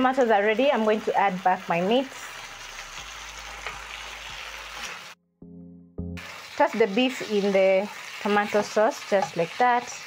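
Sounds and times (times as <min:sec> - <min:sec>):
sauce sizzling in a frying pan: 0:00.0 - 0:05.2, 0:06.2 - 0:10.0
low musical note: 0:05.2 - 0:06.3.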